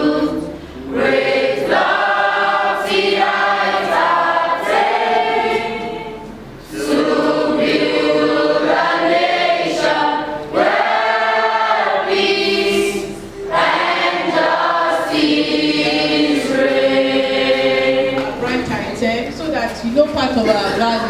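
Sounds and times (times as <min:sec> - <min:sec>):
student choir singing: 0:00.0 - 0:18.8.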